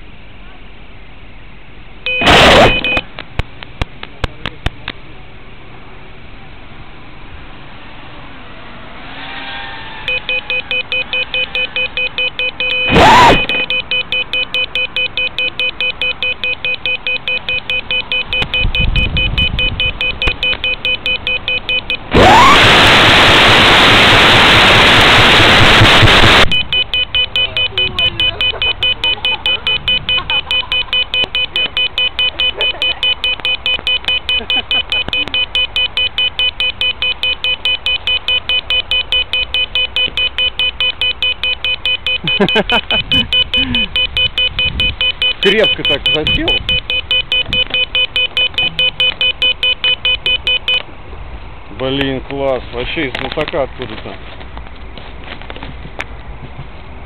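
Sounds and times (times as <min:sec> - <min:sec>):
rapid electronic beeping: 0:02.1 - 0:03.1, 0:10.1 - 0:50.8
radio static hiss: 0:02.2 - 0:03.0, 0:22.1 - 0:26.5.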